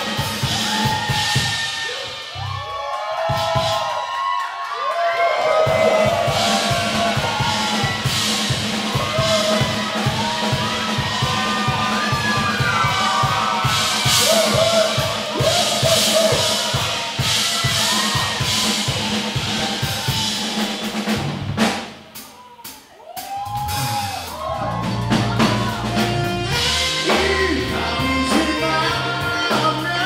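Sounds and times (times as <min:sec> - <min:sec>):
drum kit steady beat: 0:00.0 - 0:04.2, 0:05.2 - 0:30.0
live blues band playing: 0:05.6 - 0:21.9, 0:23.3 - 0:30.0.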